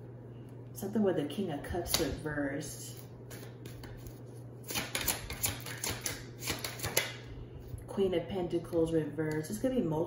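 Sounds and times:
cards clicking and flicking: 0:04.7 - 0:07.2.

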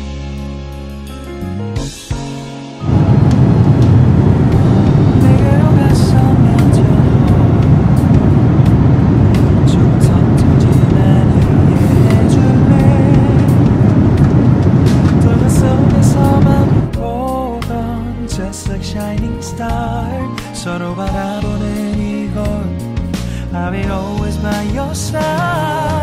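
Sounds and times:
airliner engines and airflow rush: 0:02.8 - 0:17.0.

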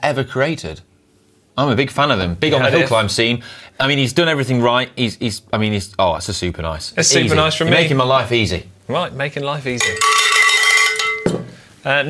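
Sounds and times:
cowbell ringing: 0:09.8 - 0:11.4.

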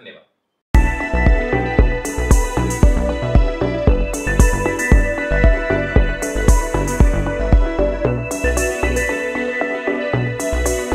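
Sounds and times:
electronic music with beat: 0:00.8 - 0:10.9.

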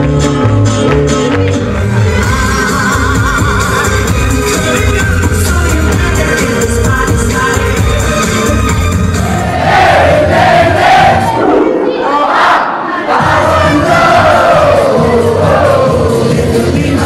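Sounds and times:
crowd singing and shouting: 0:00.0 - 0:17.0
loud dance music: 0:00.0 - 0:17.0.

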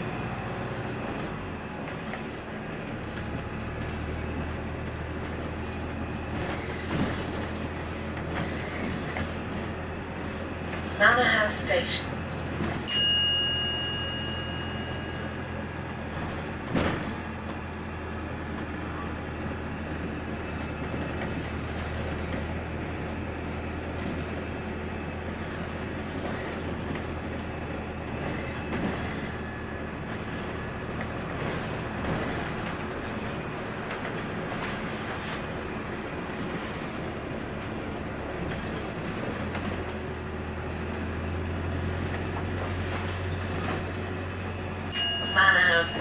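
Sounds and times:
bus engine and road drone: 0:00.0 - 0:46.0.

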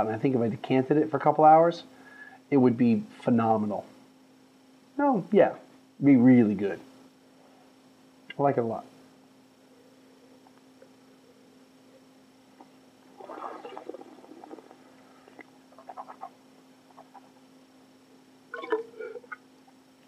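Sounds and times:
low electrical hum: 0:00.0 - 0:20.0
person slurping wine: 0:13.2 - 0:16.3, 0:18.6 - 0:19.4.

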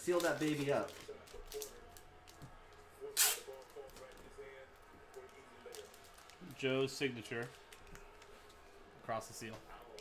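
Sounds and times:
plastic bag rustling: 0:00.0 - 0:02.4
sharp plastic crackle: 0:00.0 - 0:04.5, 0:05.1 - 0:08.6.

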